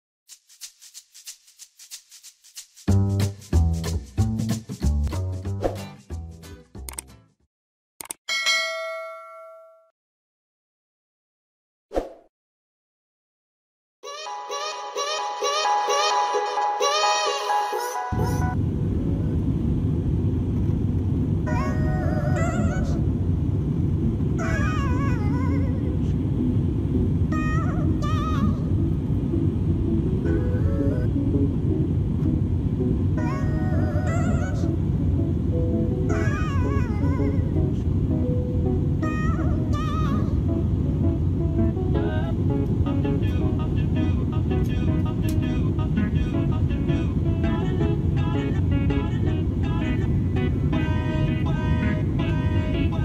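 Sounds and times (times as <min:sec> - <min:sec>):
shaker playing quick rhythm: 0:00.3 - 0:07.0
background music with vibrato melody: 0:14.0 - 0:18.6, 0:35.5 - 0:37.6
aircraft cabin rumble: 0:18.6 - 0:52.9.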